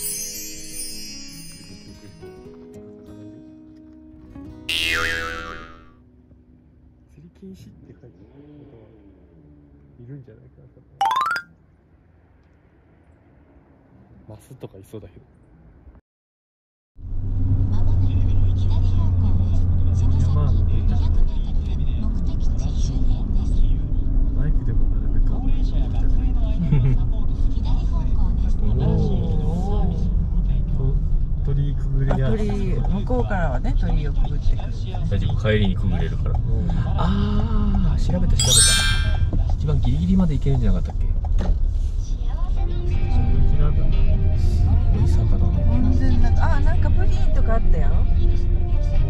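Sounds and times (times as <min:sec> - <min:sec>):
wavering sound effect: 0:11.0 - 0:11.4, 0:38.4 - 0:39.4
road rumble: 0:17.0 - 0:38.1.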